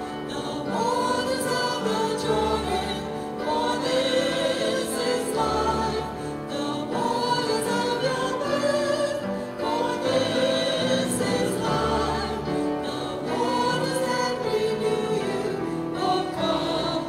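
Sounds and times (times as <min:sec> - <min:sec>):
church choir singing a hymn: 0:00.0 - 0:17.0.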